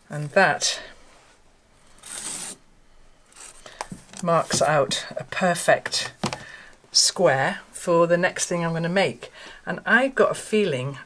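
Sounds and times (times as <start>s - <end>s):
marker drawn across fabric: 2.0s - 2.6s.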